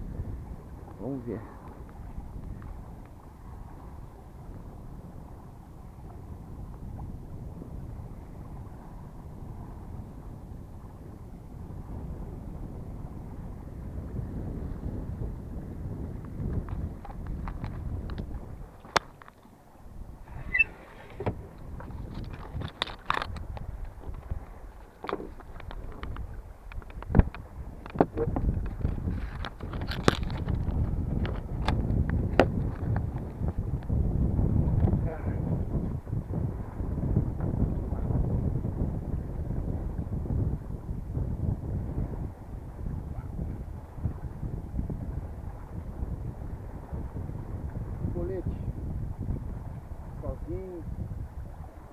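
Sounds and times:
wind rumble on microphone: 0.0 - 51.9.

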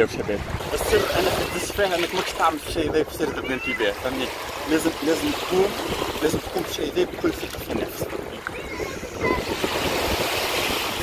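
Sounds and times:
wind rumbling on microphone: 0.0 - 11.0
small waves washing on sand: 0.1 - 11.0.

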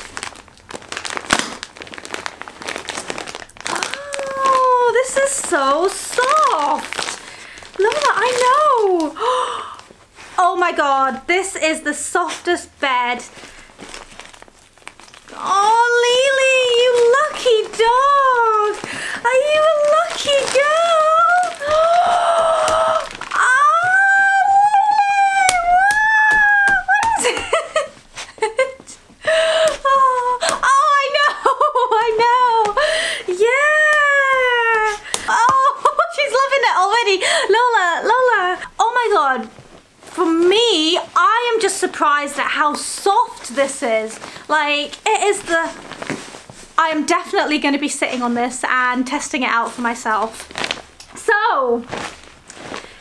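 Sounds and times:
plastic wrapping crinkling: 0.0 - 53.0.

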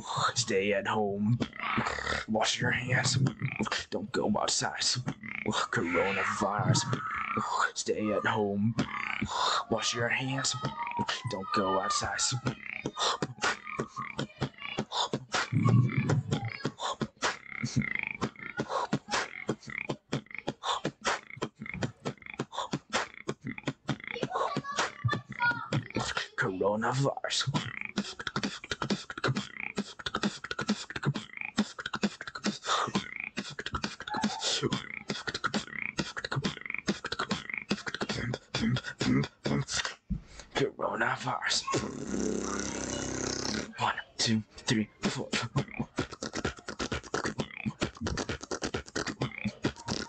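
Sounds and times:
low buzzing beatbox bass: 1.3 - 3.9, 12.3 - 26.3, 27.4 - 40.2, 41.8 - 43.8, 44.7 - 50.0
beatboxing snare and hi-hat clicks: 12.4 - 26.4, 27.4 - 40.1, 45.0 - 50.0.

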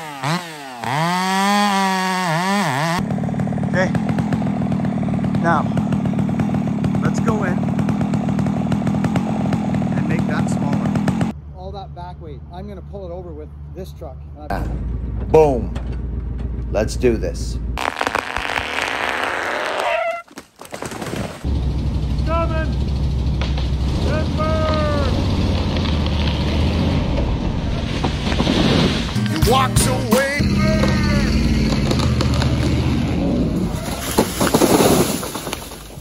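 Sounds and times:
chainsaw running: 0.0 - 11.3, 17.8 - 19.8, 30.3 - 35.7
pickup engine droning: 21.5 - 33.8.

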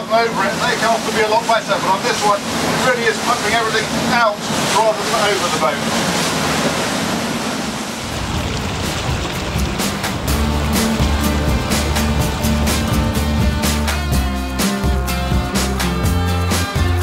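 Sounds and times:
motor boat rushing through water: 0.0 - 17.0
music with heavy bass line: 9.4 - 17.0.

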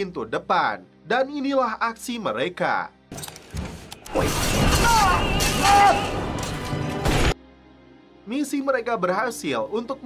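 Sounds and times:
ceiling crashing and shattering: 4.1 - 7.4.

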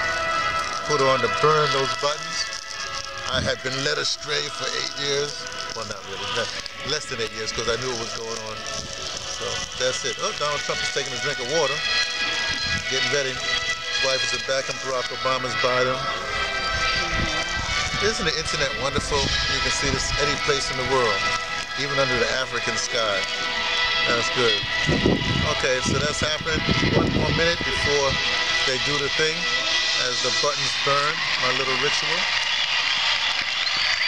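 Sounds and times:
tinny crowd noise from phone speaker: 3.2 - 34.0
music with held chords on phone speaker: 19.3 - 30.1.

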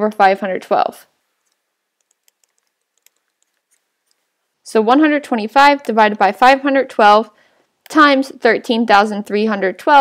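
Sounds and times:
stylus ticking on tablet screen: 1.4 - 4.2.

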